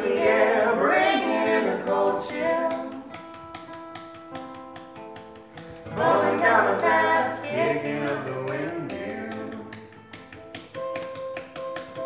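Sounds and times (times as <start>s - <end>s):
voices singing: 0.0s - 3.1s, 5.9s - 9.8s
guitars: 0.0s - 12.0s
light clicks beat: 0.0s - 12.0s.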